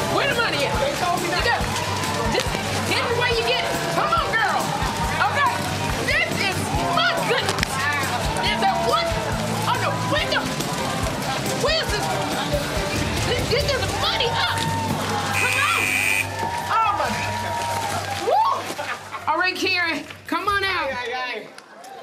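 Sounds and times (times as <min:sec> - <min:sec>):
upbeat game show music: 0:00.0 - 0:17.4
women shrieking and whooping: 0:13.4 - 0:19.1.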